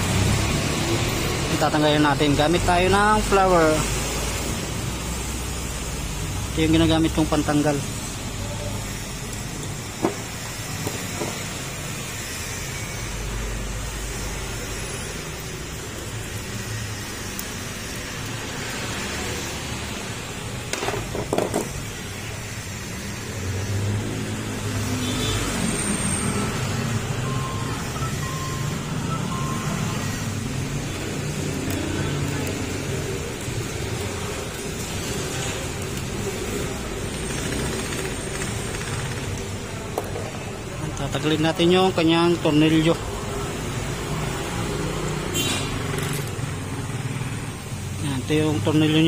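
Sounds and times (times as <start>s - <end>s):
steady background noise: 0.0s - 49.0s.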